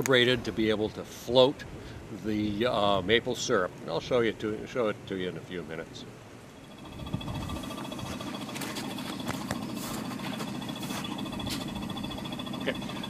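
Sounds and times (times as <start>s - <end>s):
vacuum pump humming: 6.3s - 13.0s.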